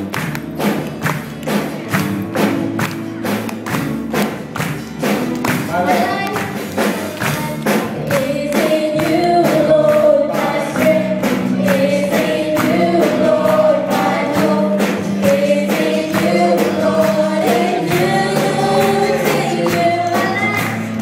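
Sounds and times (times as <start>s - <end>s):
band playing: 0.0s - 21.0s
steady beat: 0.0s - 21.0s
many voices singing: 5.6s - 21.0s.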